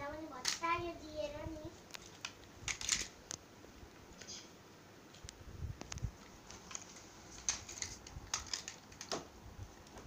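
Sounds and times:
plastic toy car clicks: 2.2 - 3.1, 7.4 - 9.2.

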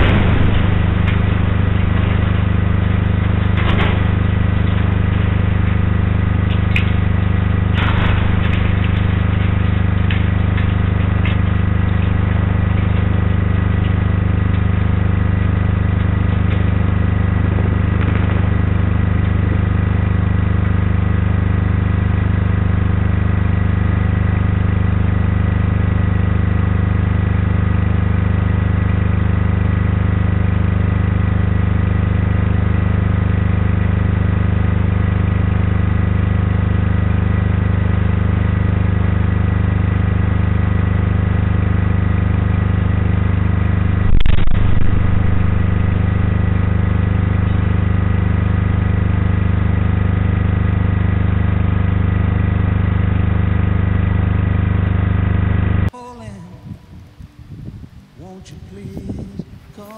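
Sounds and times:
low mechanical hum: 0.0 - 59.9.

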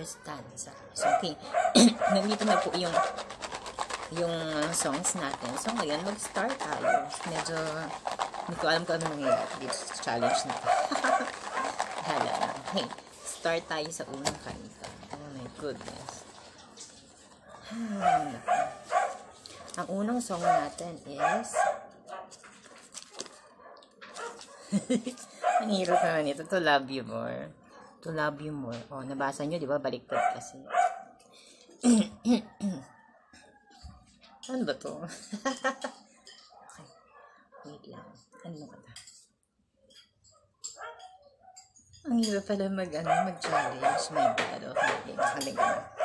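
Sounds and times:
dog barking: 0.1 - 3.2, 6.8 - 7.2, 10.2 - 11.8, 17.5 - 22.4, 23.3 - 24.7, 25.4 - 26.2, 27.7 - 28.0, 30.1 - 31.2, 36.5 - 38.5, 40.8 - 41.7, 43.0 - 46.0.

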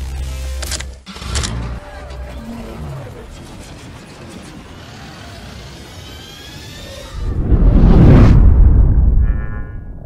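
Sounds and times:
mechanical whirring with whine: 0.0 - 8.1.

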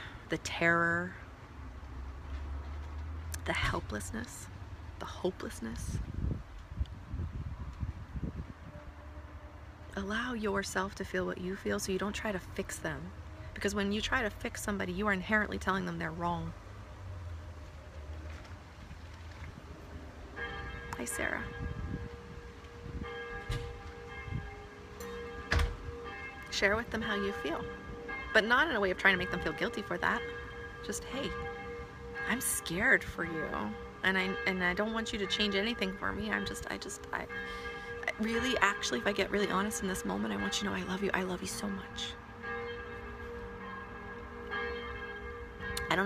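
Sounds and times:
church bells ringing: 19.8 - 46.0.

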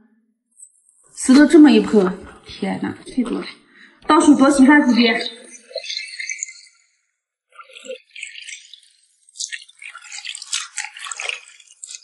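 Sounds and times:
water splashing in a steel basin: 7.6 - 12.0.

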